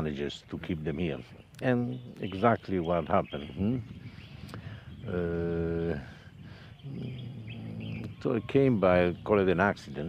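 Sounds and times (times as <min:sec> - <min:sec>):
faint bird chirps: 0:00.0 - 0:10.0
man humming in hesitation: 0:06.8 - 0:08.2.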